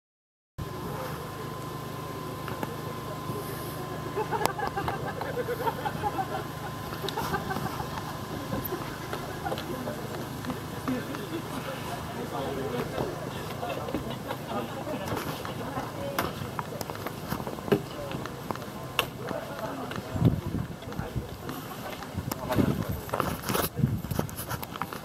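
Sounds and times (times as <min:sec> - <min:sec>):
people chatting faintly: 0:00.6 - 0:25.0
steady low hum: 0:00.6 - 0:25.0.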